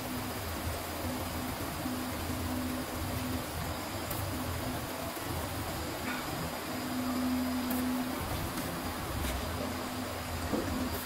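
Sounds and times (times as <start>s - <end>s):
steady hum: 0.0s - 11.0s.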